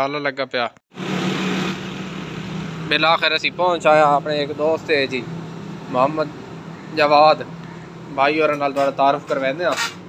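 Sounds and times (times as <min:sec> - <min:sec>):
street noise: 0:00.9 - 0:10.0
vehicle engine running: 0:01.0 - 0:09.7.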